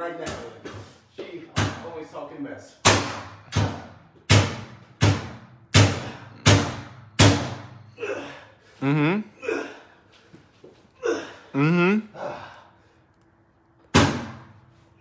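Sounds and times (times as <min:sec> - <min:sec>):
pry bar banging on metal door: 0:02.8 - 0:07.7.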